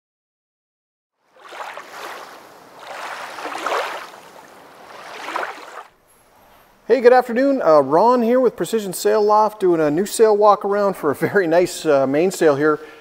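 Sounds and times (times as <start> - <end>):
rushing surf-like noise: 1.4 - 5.9.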